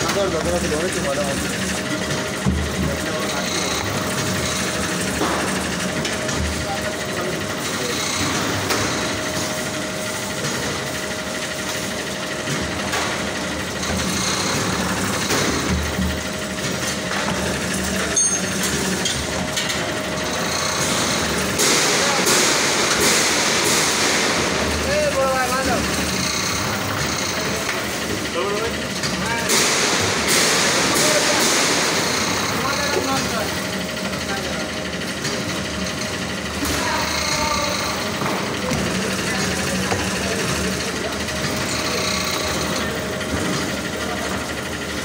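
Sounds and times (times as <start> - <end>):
dough sheeting machine humming: 0.0 - 45.0.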